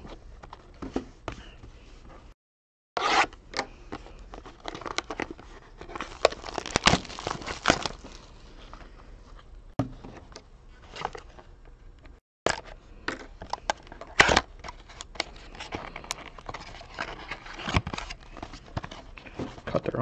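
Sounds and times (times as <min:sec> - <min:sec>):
cardboard packaging crinkling and tearing: 0:04.3 - 0:08.8.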